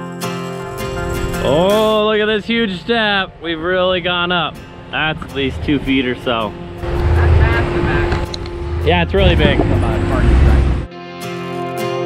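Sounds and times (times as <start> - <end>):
off-road vehicle rumbling over rock: 1.9 - 10.9.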